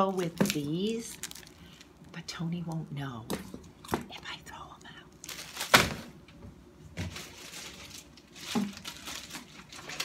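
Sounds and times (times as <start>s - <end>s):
plastic wrapping crinkling: 0.0s - 2.1s, 5.2s - 6.2s, 6.9s - 10.0s.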